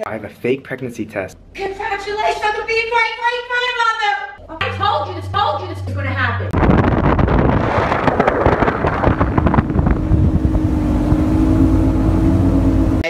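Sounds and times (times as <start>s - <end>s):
steady motor drone: 4.4s - 13.0s
wind buffeting microphone: 6.5s - 13.0s.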